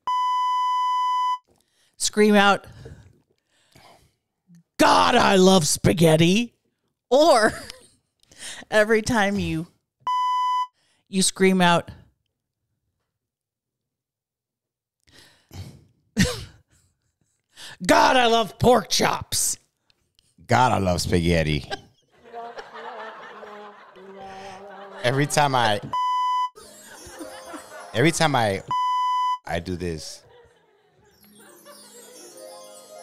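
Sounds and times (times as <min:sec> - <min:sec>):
censor bleep: 0:00.0 - 0:01.4, 0:10.1 - 0:10.7, 0:25.9 - 0:26.6, 0:28.7 - 0:29.4
person speaking: 0:23.4 - 0:26.0, 0:27.7 - 0:28.8, 0:29.5 - 0:30.3.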